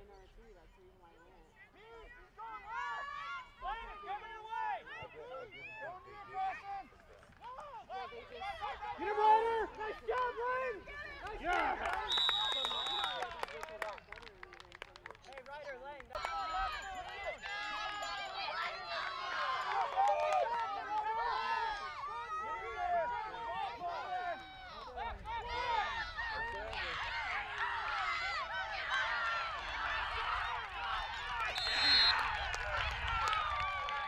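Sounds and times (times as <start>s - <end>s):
referee's whistle: 12.0s - 13.3s, 31.5s - 32.4s
people shouting and cheering: 16.2s - 34.0s.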